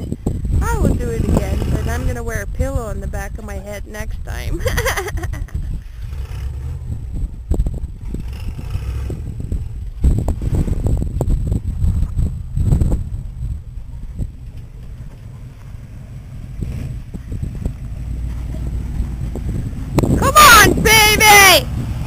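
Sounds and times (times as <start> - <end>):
distant truck engine: 0.0 - 22.0
wind buffeting microphone: 0.0 - 22.0.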